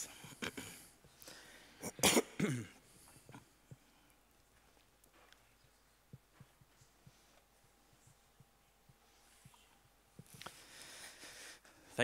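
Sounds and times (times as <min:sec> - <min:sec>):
man clearing his throat: 0:01.8 - 0:03.4.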